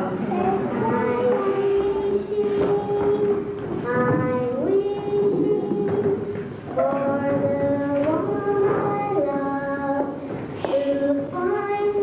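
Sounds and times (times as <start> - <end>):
girl singing long notes: 0.0 - 12.0.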